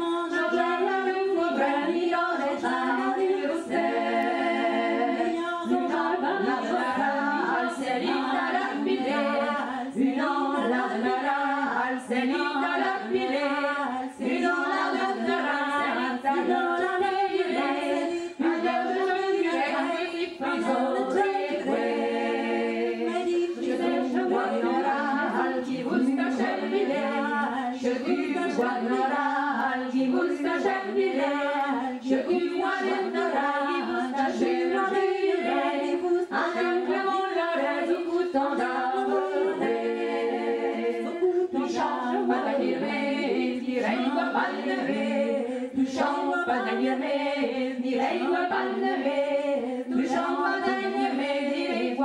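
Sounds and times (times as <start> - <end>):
women singing a cappella: 0.0 - 52.0.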